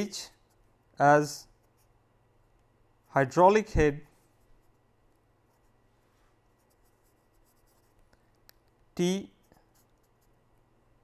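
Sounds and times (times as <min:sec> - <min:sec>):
pen scratching on paper: 0:06.5 - 0:08.1.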